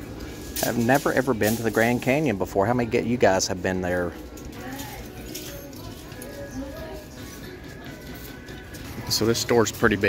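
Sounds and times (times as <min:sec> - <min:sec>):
in-store music: 0:00.0 - 0:10.0
faint background voices: 0:00.6 - 0:10.0.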